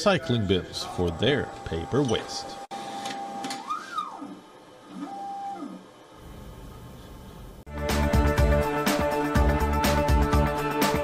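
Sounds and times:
printer motors whirring: 0.4 - 6.2.

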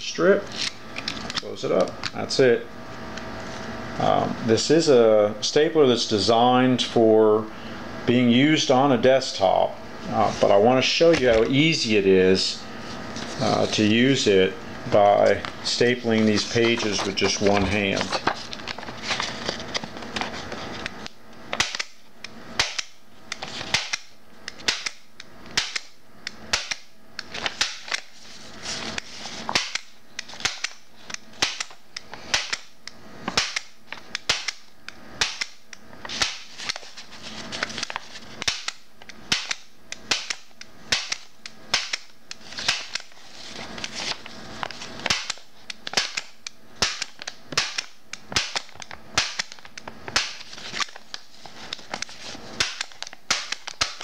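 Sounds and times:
paper shifting: 12.8 - 14.2, 14.9 - 21.1, 27.2 - 31.2, 36.0 - 38.5, 42.4 - 46.0, 48.6 - 54.0
stapler snapping through paper: 16.2 - 28.1, 28.9 - 36.9, 37.5 - 54.0.

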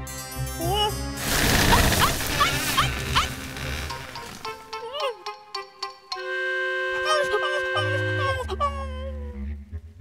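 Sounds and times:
background music: 0.0 - 10.0
noisy rustling crash: 1.2 - 4.6.

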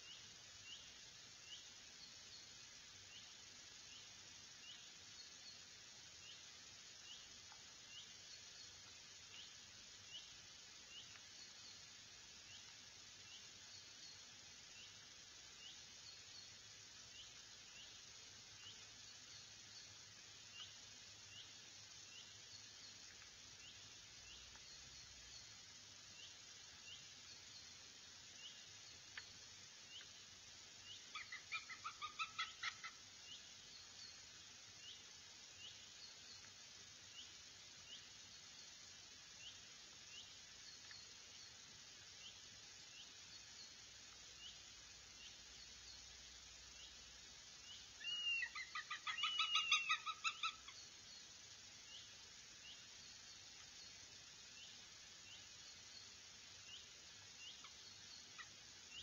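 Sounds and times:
faint bird chirps: 0.0 - 59.0
rapid sharp bird calls: 30.9 - 33.1, 48.0 - 50.8.

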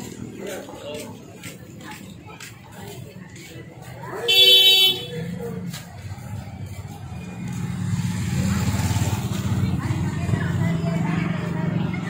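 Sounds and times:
people's voices: 0.0 - 12.0.

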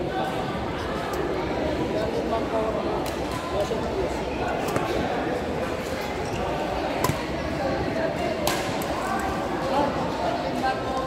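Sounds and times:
voices in echoing hall: 0.0 - 11.0
racket hitting shuttlecock: 7.0 - 7.3.

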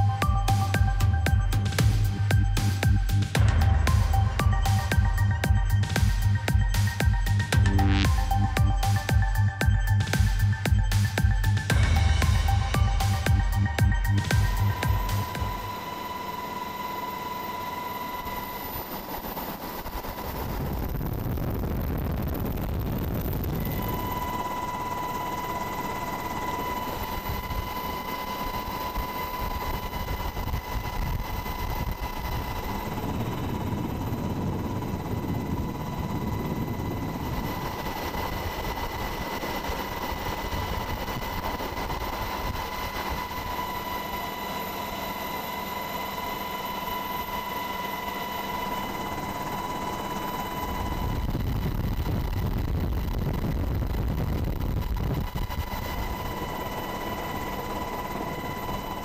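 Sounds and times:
helicopter rotor and engine rumble: 0.0 - 59.0
high-pitched whine: 0.0 - 59.0.

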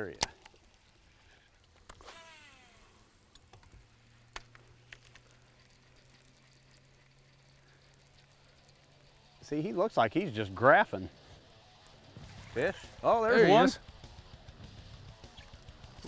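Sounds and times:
fishing tackle clicks: 0.0 - 9.7
electric motor humming: 0.0 - 16.0.

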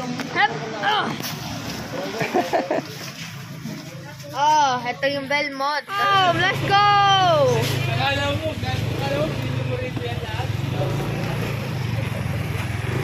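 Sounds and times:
road and wind noise: 0.0 - 13.0
motorcycle engine running: 6.0 - 13.0.

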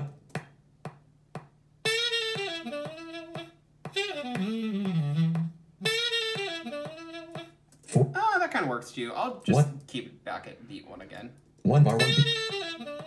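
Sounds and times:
jazz saxophone phrase: 1.9 - 8.2, 11.7 - 13.0.

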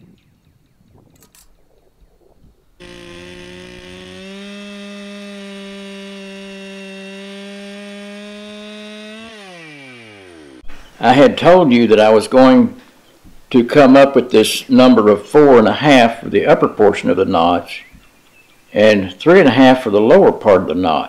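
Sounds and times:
chainsaw cutting log: 2.8 - 10.7.

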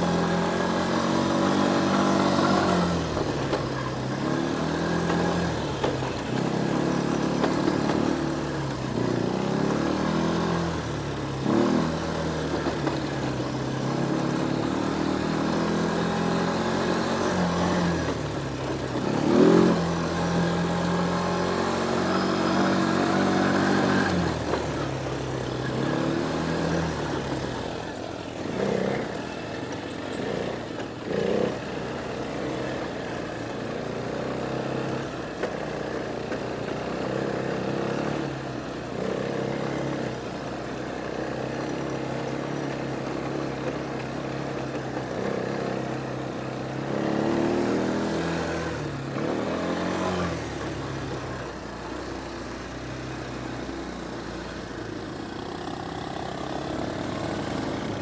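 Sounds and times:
quad bike engine running: 0.0 - 58.0.

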